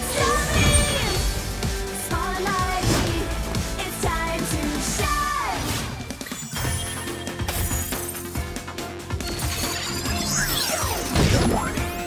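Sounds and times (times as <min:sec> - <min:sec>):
upbeat cartoon music: 0:00.0 - 0:12.0.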